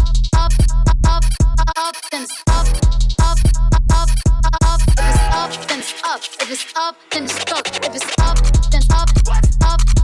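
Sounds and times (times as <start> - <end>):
hip hop bass and drum beat: 0.0 - 10.0.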